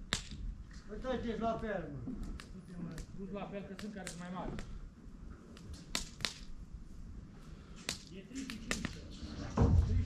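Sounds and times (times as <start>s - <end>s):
sharp crack: 0.0s - 0.5s, 1.5s - 4.8s, 5.5s - 6.6s, 7.7s - 9.1s.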